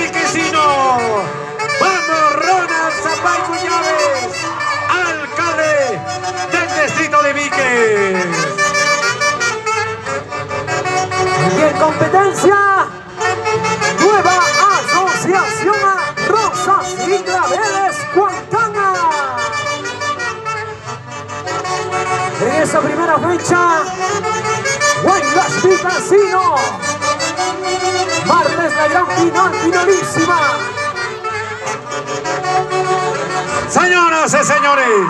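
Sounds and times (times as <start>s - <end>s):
folk orchestra with saxophones: 0.0s - 35.0s.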